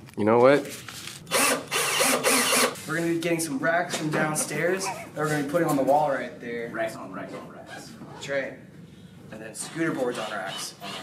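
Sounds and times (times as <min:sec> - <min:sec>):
cordless drill whirring: 0:01.3 - 0:02.8.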